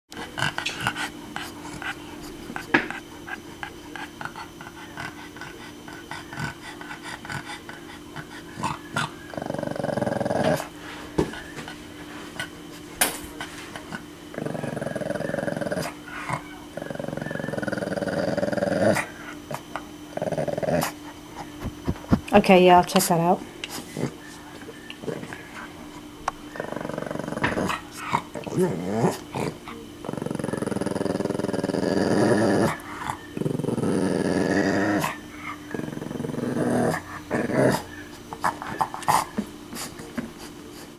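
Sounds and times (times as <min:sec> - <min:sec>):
dog growling: 0:00.1 - 0:11.6, 0:13.8 - 0:22.3, 0:23.8 - 0:40.1.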